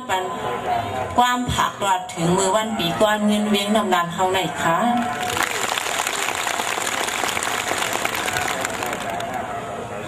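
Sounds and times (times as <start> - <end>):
audience applauding: 5.0 - 9.5.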